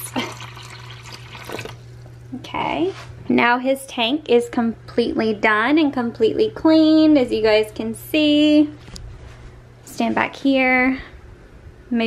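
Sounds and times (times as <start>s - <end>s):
water splashing into a dish: 0.0s - 1.8s.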